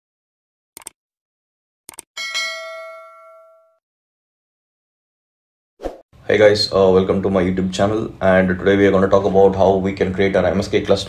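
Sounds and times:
double mouse click: 0:00.8 - 0:01.0
notification bell ringing: 0:02.2 - 0:03.8.

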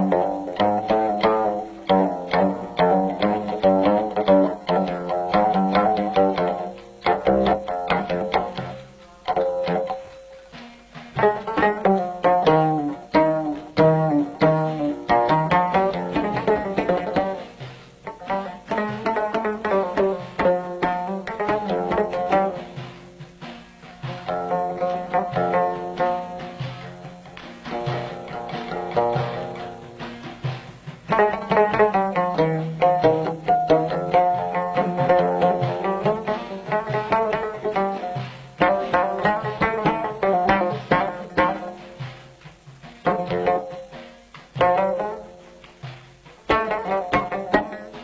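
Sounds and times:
plucked lute playing fast runs: 0:00.0 - 0:48.0.

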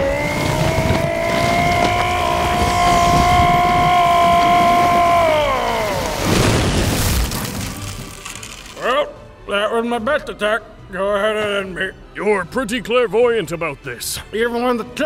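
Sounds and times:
crashing impact: 0:06.1 - 0:08.8.

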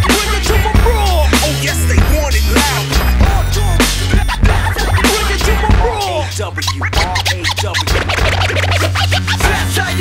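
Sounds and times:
hip hop beat: 0:00.0 - 0:10.0
steady bass line: 0:00.0 - 0:10.0
turntable scratching: 0:00.0 - 0:10.0.

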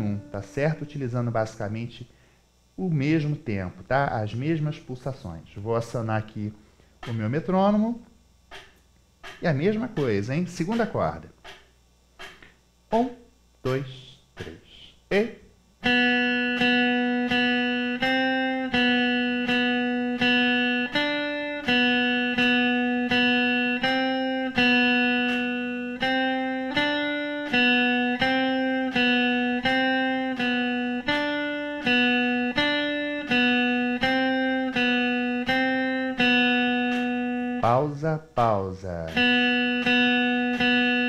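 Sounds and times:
clean electric guitar melody: 0:00.0 - 0:00.8, 0:15.8 - 0:38.0, 0:39.0 - 0:41.0.

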